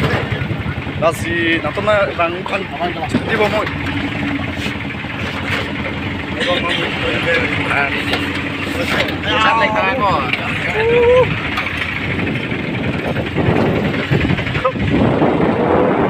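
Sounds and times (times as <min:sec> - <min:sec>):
road noise rumble: 0:00.0 - 0:16.0
truck engine running: 0:00.0 - 0:16.0
voices chatting: 0:00.8 - 0:14.9.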